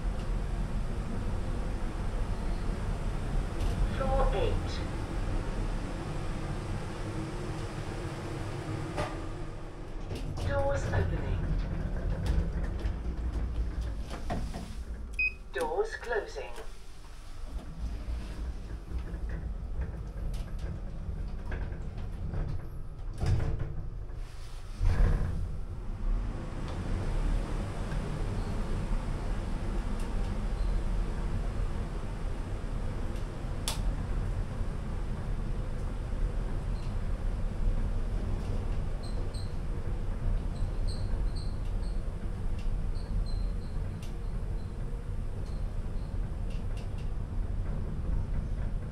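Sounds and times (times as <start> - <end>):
lift doors sliding closed: 0.0 - 15.2, 16.9 - 48.9
steady low lift hum: 0.0 - 23.2, 23.9 - 48.9.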